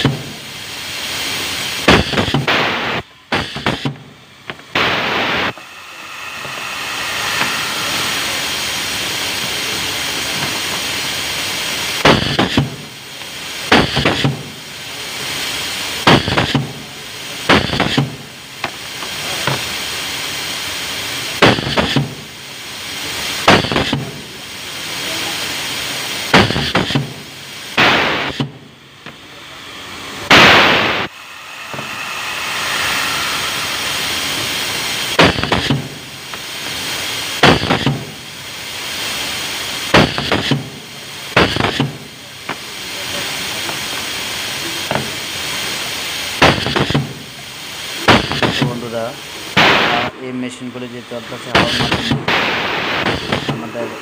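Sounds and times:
burst of air: 0:00.0 - 0:54.0
steady air hiss: 0:00.0 - 0:54.0
air cylinder clacking: 0:03.3 - 0:11.1, 0:12.0 - 0:14.5, 0:26.3 - 0:29.4, 0:30.2 - 0:38.1, 0:39.9 - 0:40.7, 0:41.4 - 0:42.6, 0:51.2 - 0:54.0.

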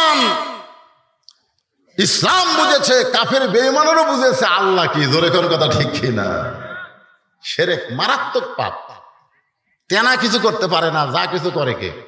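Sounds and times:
man preaching: 0:00.0 - 0:00.7, 0:02.0 - 0:09.1, 0:09.9 - 0:12.0.

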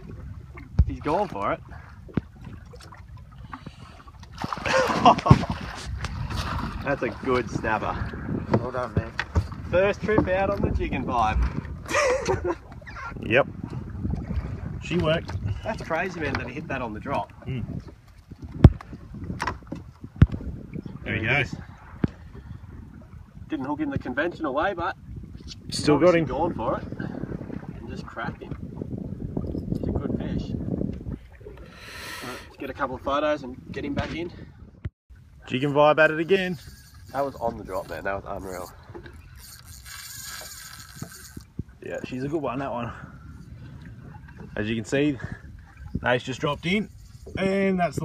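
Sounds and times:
knocks from handling fish: 0:04.4 - 0:06.1
fishing reel whirring: 0:36.0 - 0:41.6, 0:46.8 - 0:47.5.

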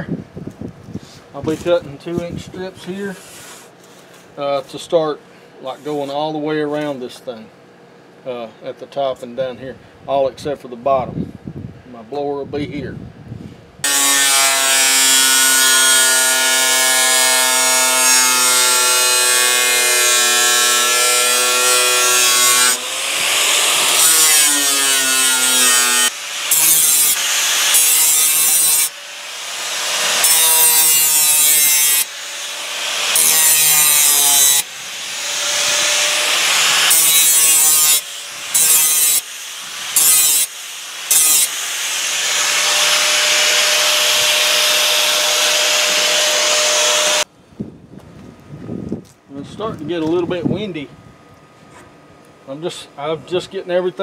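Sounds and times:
angle grinder cutting steel: 0:13.8 - 0:47.3.

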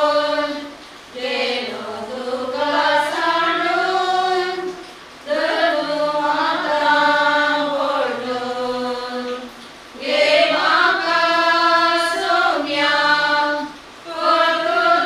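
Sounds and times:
group singing prayer chant: 0:00.0 - 0:15.0.

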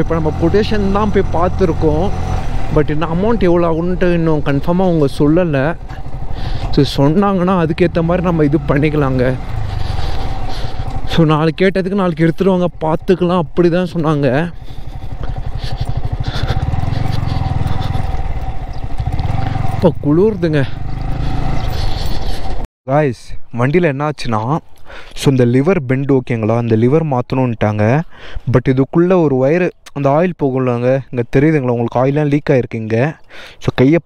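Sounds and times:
person talking: 0:00.0 - 0:05.9, 0:06.7 - 0:09.5, 0:11.0 - 0:14.6, 0:19.8 - 0:20.8
motorcycle rumble: 0:00.0 - 0:22.7.

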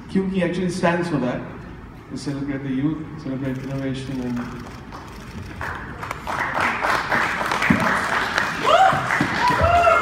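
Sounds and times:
people clapping: 0:04.4 - 0:10.0.

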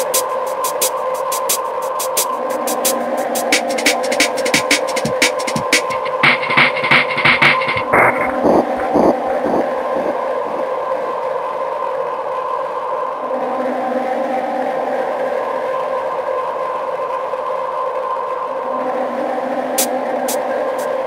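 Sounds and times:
sustained synth drone: 0:06.0 - 0:21.0.

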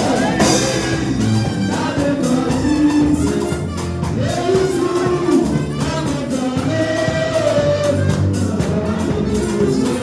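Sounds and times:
drum kit and percussion: 0:00.0 - 0:10.0
voices singing gospel: 0:00.0 - 0:10.0.

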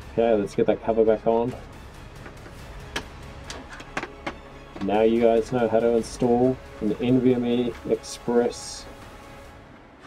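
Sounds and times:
faint background music: 0:00.0 - 0:10.0
metal cover clicks and knocks: 0:02.2 - 0:04.9.

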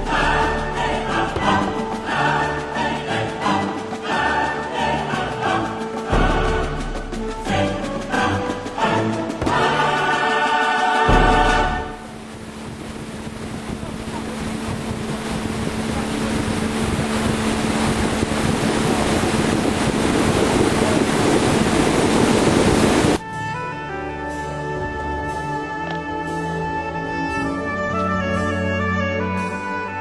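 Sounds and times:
music: 0:00.0 - 0:30.0
wind on microphone: 0:11.0 - 0:23.2
low engine hum: 0:11.1 - 0:23.2.

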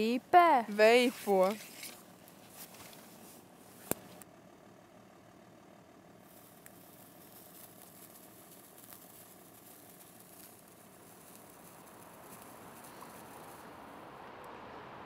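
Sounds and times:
sparkler crackles: 0:00.0 - 0:04.2, 0:06.2 - 0:13.9
sparkler fizzing hiss: 0:06.3 - 0:13.9.

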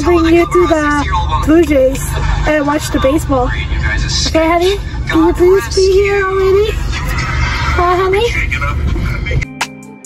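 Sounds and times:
car cabin rumble: 0:00.0 - 0:09.4.

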